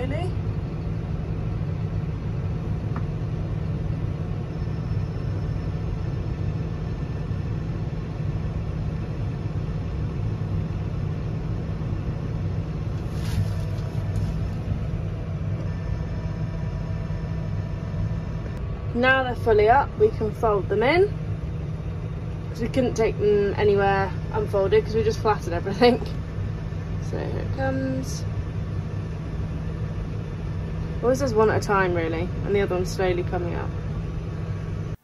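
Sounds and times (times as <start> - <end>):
tractor engine running: 0.0 - 35.0
hydraulics: 12.4 - 35.0.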